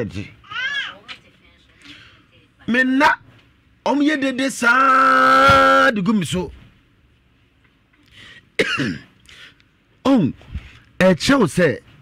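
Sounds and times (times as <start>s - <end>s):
person clearing throat: 8.6s - 9.2s
person coughing: 8.6s - 9.2s.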